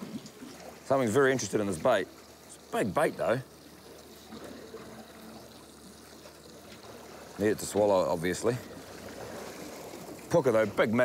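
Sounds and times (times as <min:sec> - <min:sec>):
water lapping against boat hull: 0:00.0 - 0:11.0.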